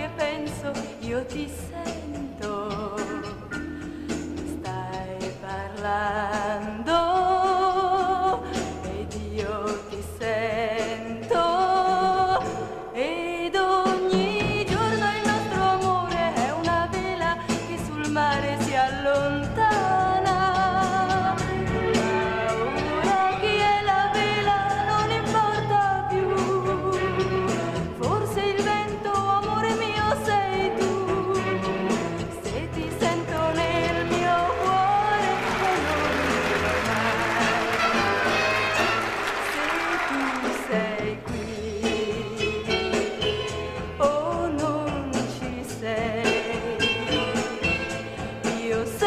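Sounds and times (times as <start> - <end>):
woman singing a ballad: 0.0 - 38.0, 39.4 - 49.0
band accompaniment with steady beat: 13.9 - 49.0
orchestral accompaniment: 21.2 - 24.4, 33.4 - 41.0.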